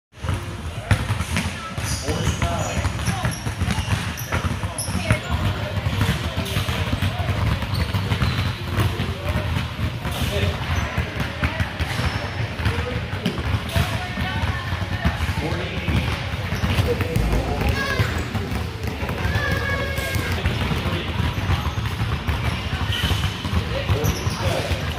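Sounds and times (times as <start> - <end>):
basketballs bouncing on hardwood: 0.2 - 24.9
voices of children and adults: 1.5 - 24.9.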